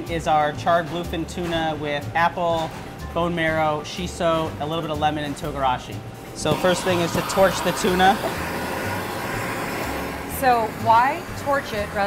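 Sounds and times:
blowtorch hissing: 0:06.4 - 0:12.0.

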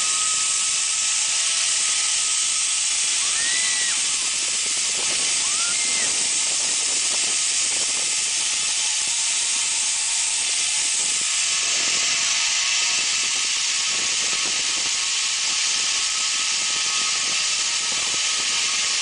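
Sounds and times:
zip line pulleys hissing on cable: 0:00.0 - 0:19.0.

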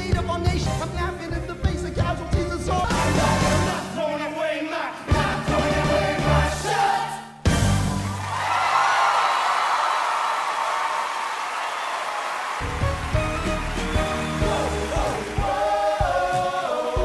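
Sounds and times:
soft stage music: 0:00.0 - 0:08.6, 0:12.5 - 0:17.0
audience applauding and cheering: 0:07.6 - 0:17.0.

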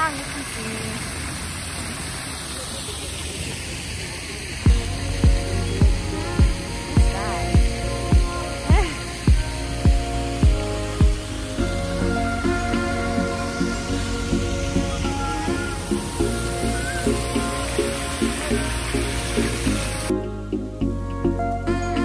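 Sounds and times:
fountain splashing into basin: 0:00.0 - 0:20.1
background music with steady beat: 0:04.7 - 0:22.0.

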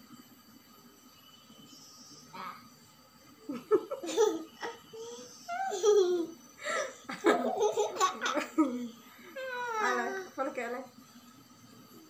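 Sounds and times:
young boy laughing: 0:03.5 - 0:10.0
woman laughing: 0:05.6 - 0:10.1.

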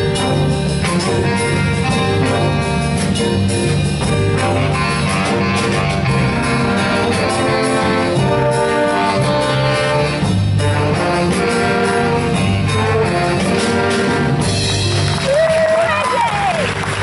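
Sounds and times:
drum kit: 0:00.0 - 0:17.0
horn section holding chords: 0:00.0 - 0:17.0.

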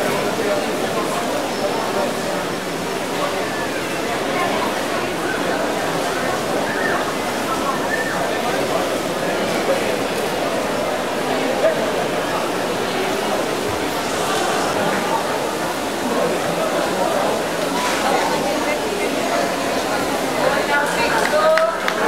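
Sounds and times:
many voices talking: 0:00.0 - 0:22.0.

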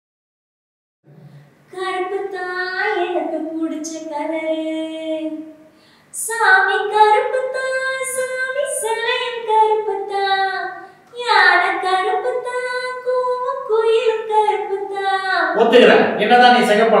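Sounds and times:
woman singing unaccompanied: 0:01.7 - 0:15.6.

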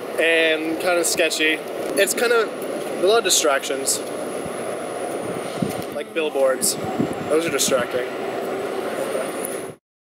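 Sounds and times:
motor vehicle rumble: 0:00.0 - 0:09.8.

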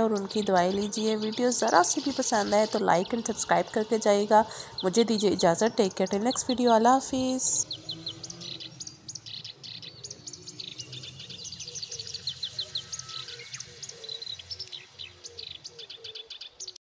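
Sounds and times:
birds chirping: 0:00.0 - 0:16.8.

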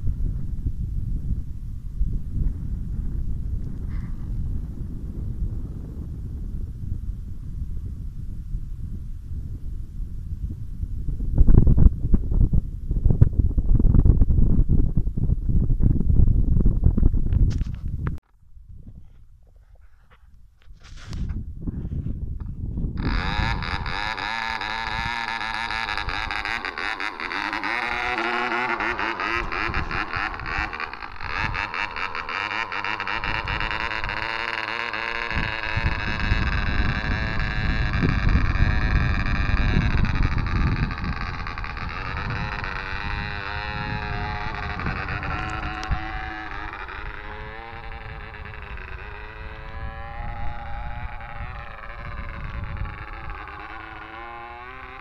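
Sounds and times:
model airplane engine buzzing: 0:19.0 - 0:55.0.

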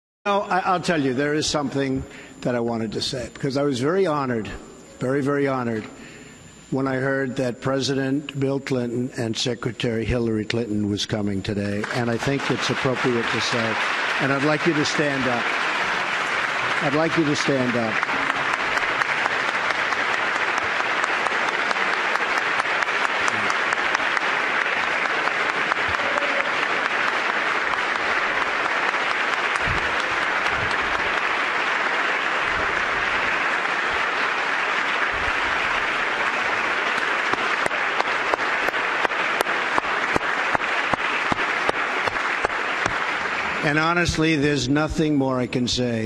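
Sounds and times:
audience applause: 0:11.8 - 0:44.4.

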